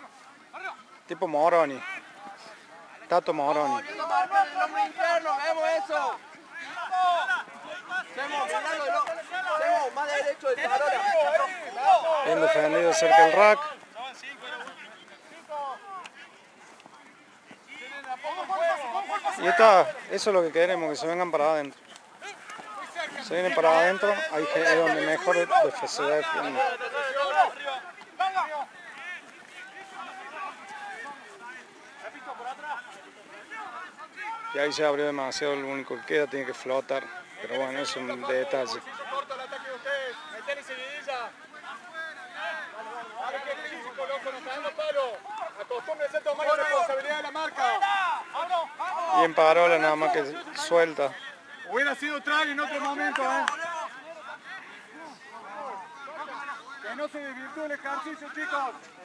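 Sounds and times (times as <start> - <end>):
faint outdoor background noise: 0.0 - 59.0
men talking and calling out: 0.0 - 59.0.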